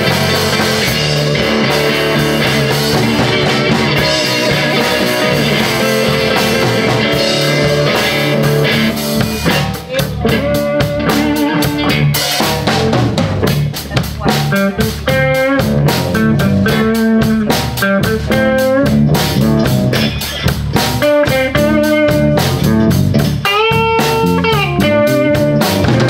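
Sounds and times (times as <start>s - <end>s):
drum kit: 0.0s - 26.0s
electric guitars: 0.0s - 26.0s.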